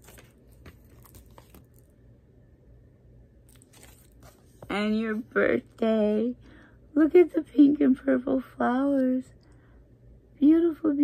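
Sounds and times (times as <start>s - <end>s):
paper rustling: 0.0s - 1.9s, 3.5s - 5.3s.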